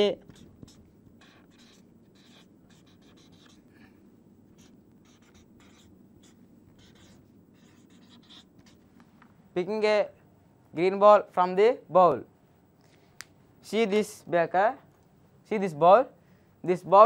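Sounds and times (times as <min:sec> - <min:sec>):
marker pen scratching on paper: 0:00.0 - 0:03.7, 0:04.5 - 0:08.9.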